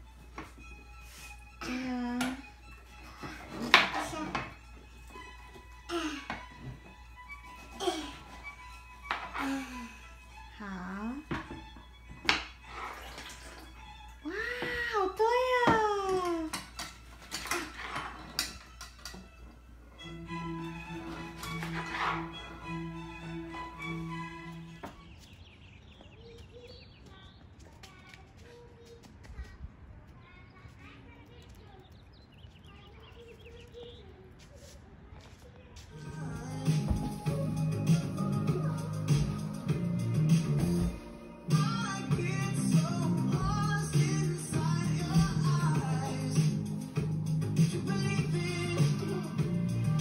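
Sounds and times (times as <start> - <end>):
background music: 0.0 - 25.2, 36.0 - 50.0.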